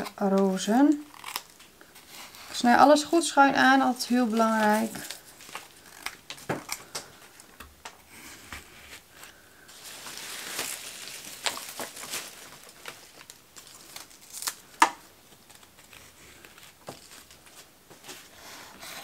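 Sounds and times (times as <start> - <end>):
rustling of leaves and stems: 0.0 - 7.4, 9.0 - 18.3.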